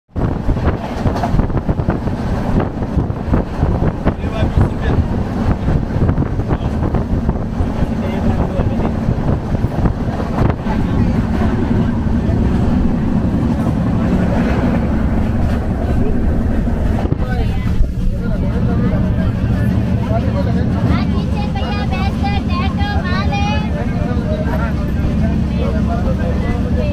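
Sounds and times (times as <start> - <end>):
train rumbling and rattling: 0.1 - 26.9
passengers' voices: 0.2 - 26.9.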